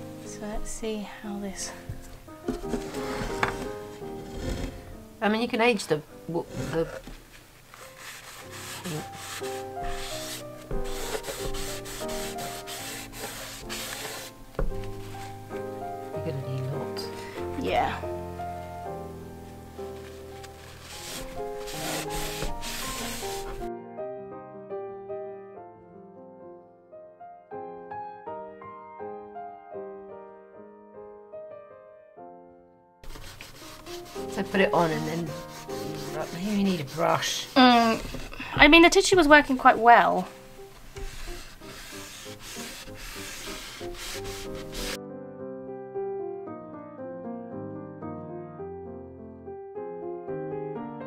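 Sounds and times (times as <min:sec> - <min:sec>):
soft background music: 0:00.0 - 0:51.0
paper tissue rubbing on wood: 0:06.5 - 0:15.6, 0:20.0 - 0:23.7, 0:33.0 - 0:45.0.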